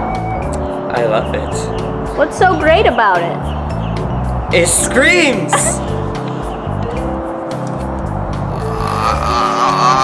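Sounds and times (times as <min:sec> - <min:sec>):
background music with bass beat: 0:00.0 - 0:10.0
person laughing: 0:05.5 - 0:05.9.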